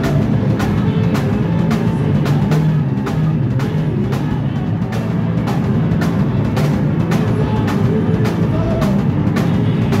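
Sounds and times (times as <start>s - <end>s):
live rock band playing: 0.0s - 10.0s.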